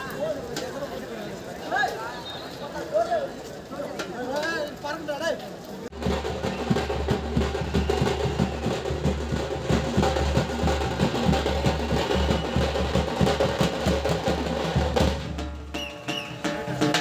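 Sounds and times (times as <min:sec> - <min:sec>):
bass drums beaten in fast rhythm: 0:05.9 - 0:17.0.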